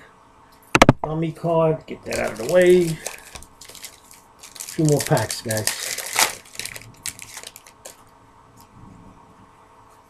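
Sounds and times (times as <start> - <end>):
wrapper crinkling and tearing: 2.0 - 8.1.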